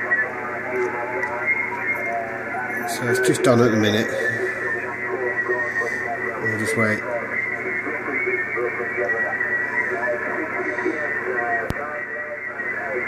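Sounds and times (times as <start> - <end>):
thin radio voice: 0.0 - 13.0.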